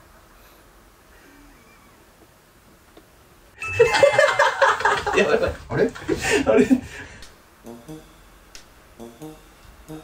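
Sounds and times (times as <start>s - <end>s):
doorbell-like chime: 3.6s - 4.5s.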